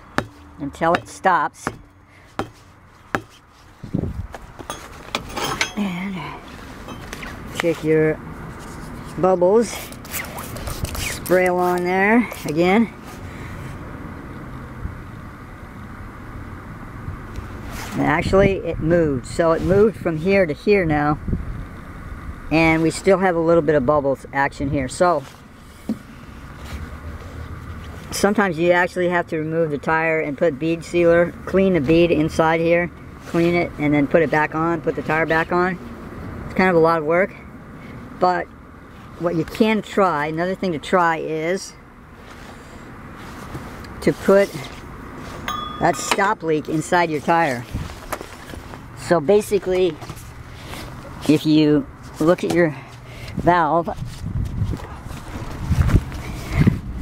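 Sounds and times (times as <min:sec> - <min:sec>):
wrench pounding a tire: 0:00.0 - 0:03.4, 0:04.6 - 0:05.8, 0:45.5 - 0:46.4.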